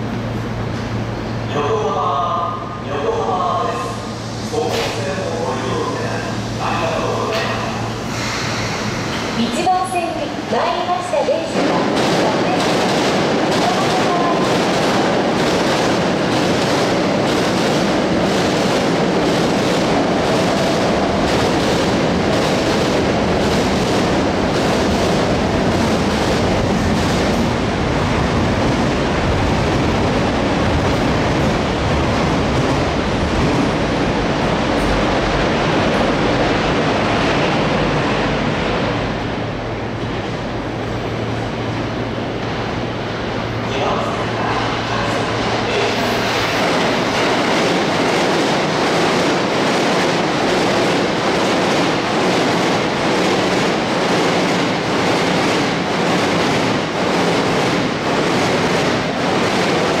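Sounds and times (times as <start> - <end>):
train wheels on rails: 4.1 - 60.0.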